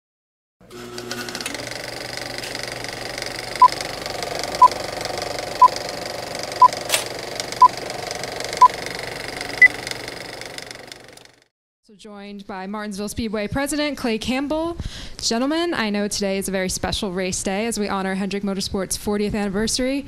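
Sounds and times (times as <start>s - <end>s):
film projector clatter: 0.6s - 11.5s.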